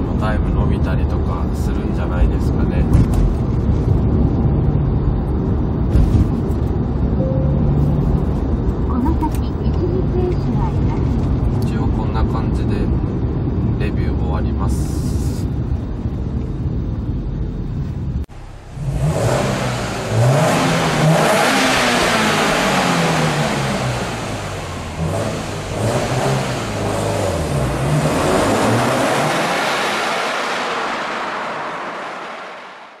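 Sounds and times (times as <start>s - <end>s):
road and engine noise in car cabin: 0.0s - 33.0s
car engine accelerating hard in tunnel: 18.3s - 33.0s.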